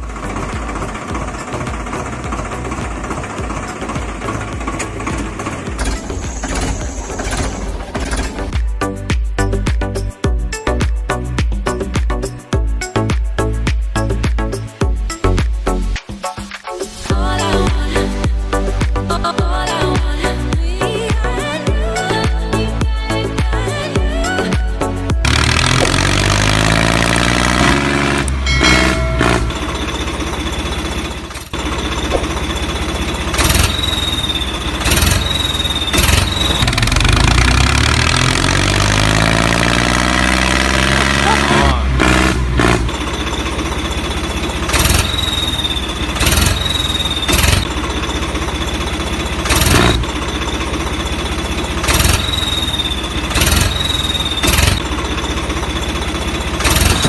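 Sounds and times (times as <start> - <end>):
engine revving: 0.0 - 8.6, 25.2 - 57.0
voice: 41.1 - 42.0.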